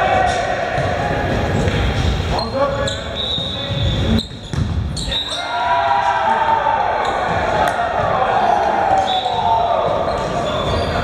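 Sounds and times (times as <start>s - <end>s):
players shouting: 0.0s - 1.8s, 5.0s - 11.0s
volleyball smacks echoing in gym: 4.2s - 5.0s, 6.5s - 10.6s.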